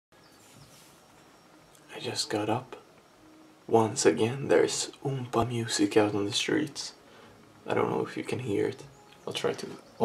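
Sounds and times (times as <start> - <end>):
faint high tones: 0.2 - 10.0.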